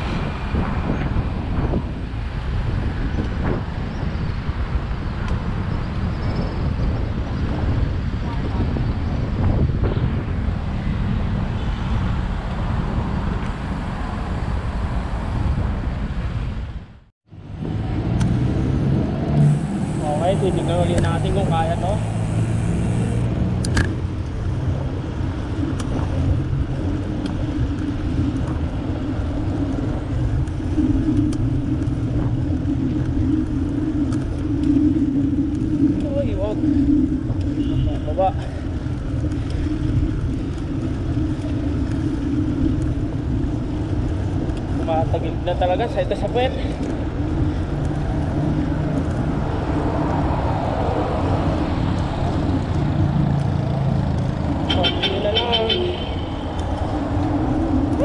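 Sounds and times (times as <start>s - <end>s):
road traffic noise: 0.0s - 58.0s
wind on microphone: 0.0s - 58.0s.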